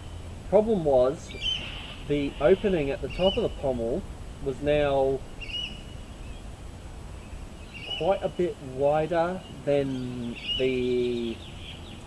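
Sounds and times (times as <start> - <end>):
low background rumble: 0.0 - 12.0
bird whistle call: 1.3 - 3.6, 5.4 - 6.4, 7.6 - 8.4, 9.4 - 12.0.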